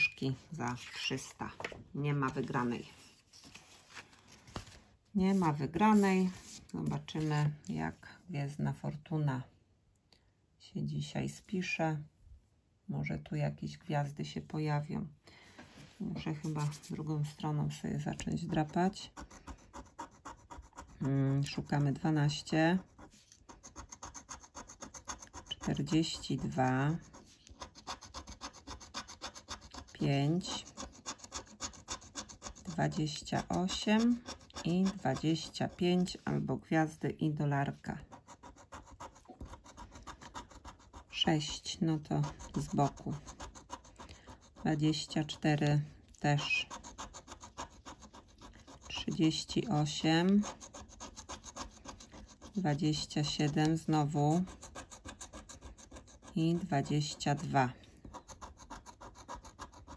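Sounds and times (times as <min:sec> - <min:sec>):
scratch card being scraped: 0:16.3 - 0:36.4, 0:37.9 - 0:59.9.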